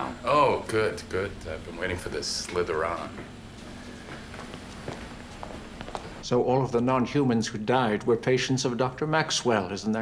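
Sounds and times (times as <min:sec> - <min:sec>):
low room hum: 0:00.0 - 0:10.0
faint footsteps on hard floor: 0:03.1 - 0:06.2.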